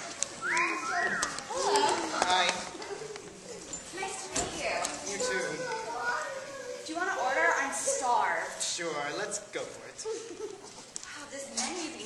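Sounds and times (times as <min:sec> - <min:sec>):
high rising and falling voice calls: 0:00.4 - 0:01.6.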